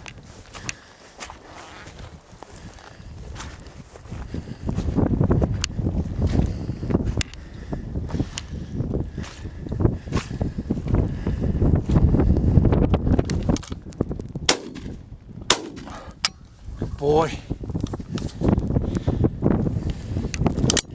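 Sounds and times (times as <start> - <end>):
footsteps brushing through heather: 0.0 - 14.1, 15.7 - 20.6
wind buffeting microphone: 0.0 - 20.9.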